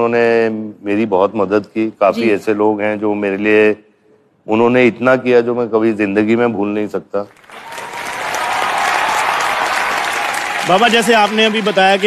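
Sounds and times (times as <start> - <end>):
audience applauding: 7.3 - 12.0.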